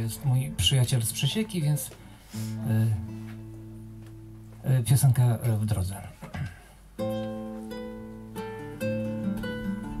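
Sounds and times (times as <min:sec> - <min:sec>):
nylon-string guitar strumming chords: 0:02.4 - 0:04.7, 0:07.0 - 0:10.0.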